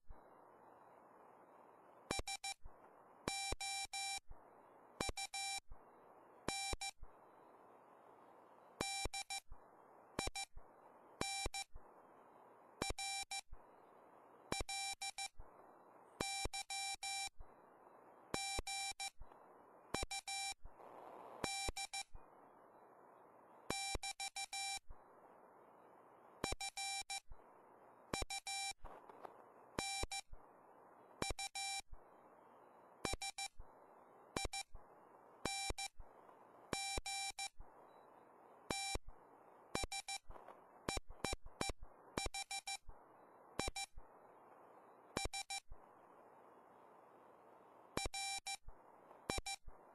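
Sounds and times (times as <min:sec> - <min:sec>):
radio receiver hiss: 0:00.0 - 0:03.6, 0:04.2 - 0:36.9, 0:37.5 - 0:49.9
morse code beeps: 0:02.1 - 0:02.6, 0:03.3 - 0:04.2, 0:05.0 - 0:05.6, 0:06.5 - 0:07.0, 0:08.8 - 0:09.5, 0:10.2 - 0:10.6, 0:11.2 - 0:11.7, 0:12.8 - 0:13.5, 0:14.5 - 0:15.4, 0:16.2 - 0:17.4, 0:18.4 - 0:19.2, 0:20.0 - 0:20.6, 0:21.4 - 0:22.2, 0:23.7 - 0:24.9, 0:26.4 - 0:27.3, 0:28.2 - 0:28.8, 0:29.8 - 0:30.3, 0:31.2 - 0:31.8, 0:33.0 - 0:33.6, 0:34.4 - 0:34.8, 0:35.4 - 0:36.0, 0:36.7 - 0:38.1, 0:38.7 - 0:39.1, 0:39.8 - 0:40.3, 0:40.9 - 0:42.9, 0:43.6 - 0:44.0, 0:45.2 - 0:45.7, 0:48.0 - 0:48.6, 0:49.3 - 0:49.7.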